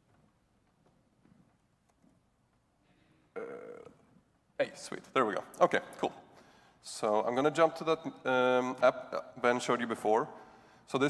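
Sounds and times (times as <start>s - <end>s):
man's hesitation sound: 3.4s - 4.1s.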